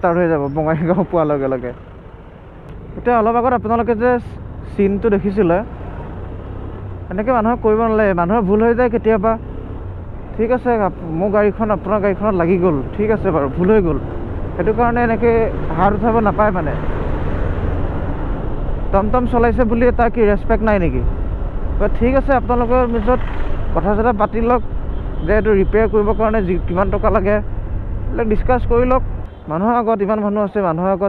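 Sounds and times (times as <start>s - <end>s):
motorcycle engine humming: 0.0s - 31.0s
road and wind noise: 0.0s - 31.0s
person speaking: 10.3s - 16.9s, 28.1s - 31.0s.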